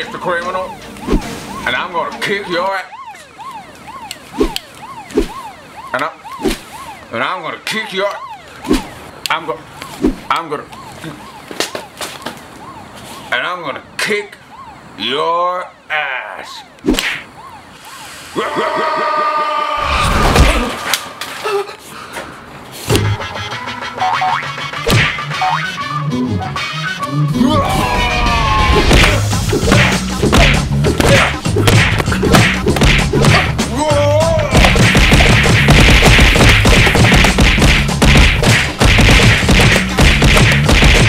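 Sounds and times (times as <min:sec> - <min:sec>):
background music: 0:00.0 - 0:02.8, 0:23.0 - 0:41.0
police siren yelping: 0:00.0 - 0:22.4, 0:25.2 - 0:32.2
sharp impact hits: 0:19.8 - 0:21.4, 0:34.6 - 0:41.0
heavy thuds: 0:34.5 - 0:41.0.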